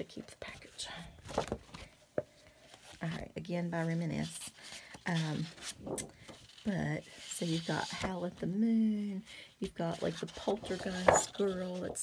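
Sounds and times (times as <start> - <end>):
paper and packaging rustling: 2.6 - 8.7, 9.8 - 12.0.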